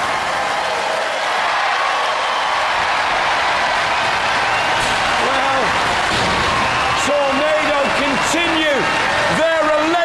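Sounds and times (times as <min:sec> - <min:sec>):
audience applauding and cheering: 0:00.0 - 0:10.0.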